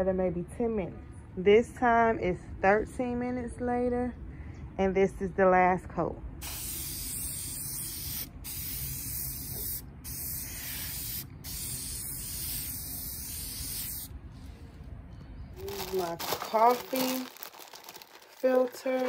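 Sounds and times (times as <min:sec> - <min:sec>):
aerosol spray hissing: 0:06.4 - 0:14.1.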